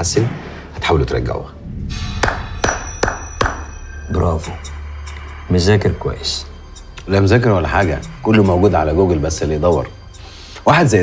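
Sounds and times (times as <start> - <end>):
background music: 0.0 - 11.0
sharp percussive hits: 1.6 - 5.2.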